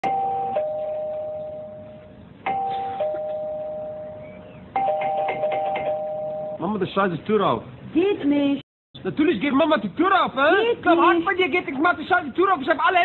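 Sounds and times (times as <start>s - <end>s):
doorbell ding-dong chime: 0.1s - 4.2s, 4.8s - 6.6s.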